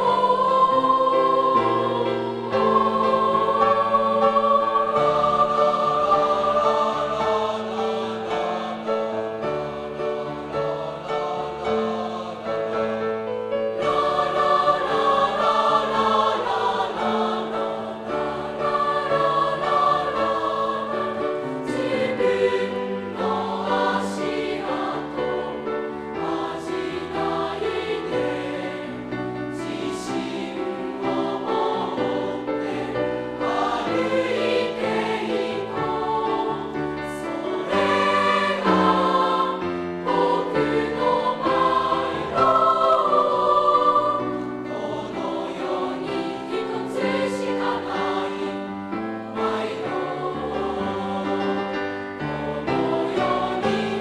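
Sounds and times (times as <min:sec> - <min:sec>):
children's choir singing in parts: 0:00.0 - 0:54.0
piano accompaniment: 0:00.0 - 0:54.0.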